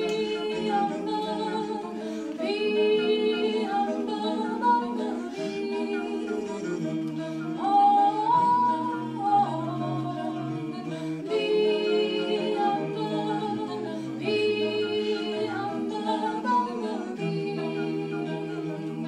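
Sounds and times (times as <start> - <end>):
a cappella group singing: 0.0 - 19.0.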